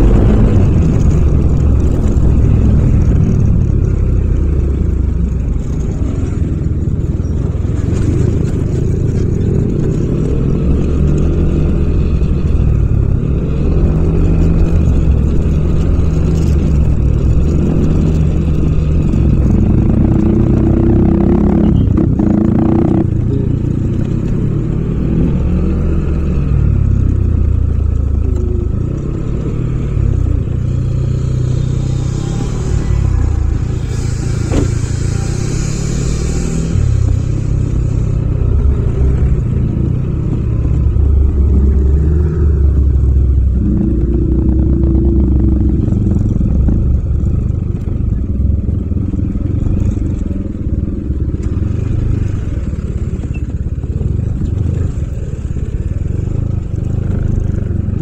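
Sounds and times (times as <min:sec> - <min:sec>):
brief hissing rush: 0:31.9 - 0:38.2.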